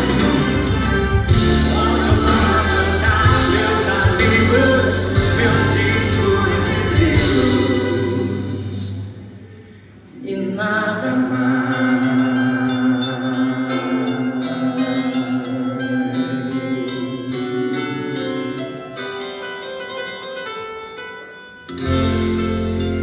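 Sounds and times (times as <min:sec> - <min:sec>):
pop band and string orchestra: 0:00.0 - 0:09.2
male voice singing without words: 0:01.3 - 0:09.1, 0:10.1 - 0:19.0.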